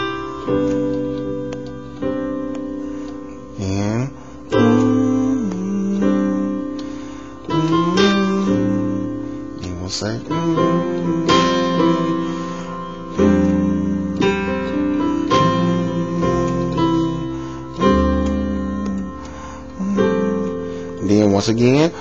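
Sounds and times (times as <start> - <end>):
synthesizer chords: 0.0 - 22.0.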